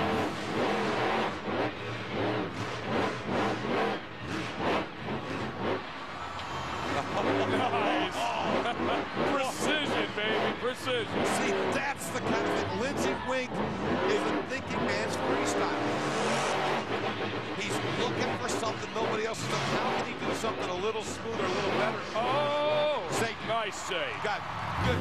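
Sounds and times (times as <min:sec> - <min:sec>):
monster truck engine revving: 0:00.0 - 0:25.0.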